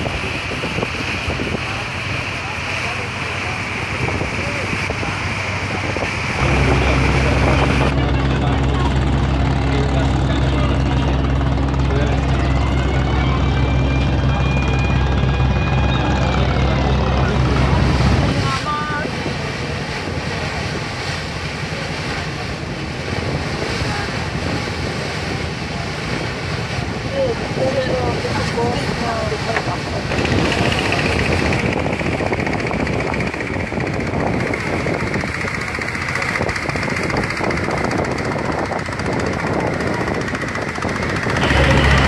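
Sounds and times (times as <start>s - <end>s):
boat engine droning: 0.0s - 42.0s
water noise: 0.0s - 42.0s
wind: 0.0s - 42.0s.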